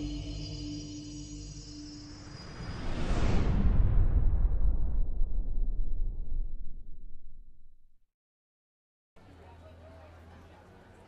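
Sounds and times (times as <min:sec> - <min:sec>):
sustained synth tones: 0:00.0 - 0:02.8
rising jet-like whoosh: 0:01.8 - 0:06.6.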